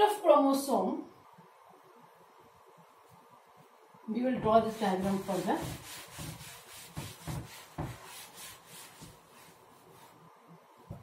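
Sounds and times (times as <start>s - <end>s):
duster rubbing on a blackboard: 4.5s - 10.3s.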